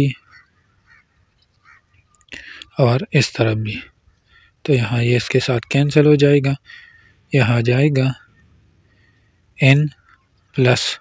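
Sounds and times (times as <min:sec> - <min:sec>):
person speaking: 0:02.2 - 0:03.9, 0:04.6 - 0:06.7, 0:07.3 - 0:08.2, 0:09.6 - 0:10.0, 0:10.6 - 0:11.0.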